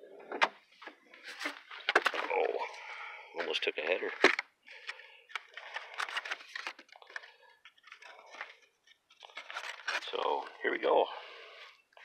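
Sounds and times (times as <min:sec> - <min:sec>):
cardboard and paper crinkling: 0:01.2 - 0:02.6, 0:03.4 - 0:11.0.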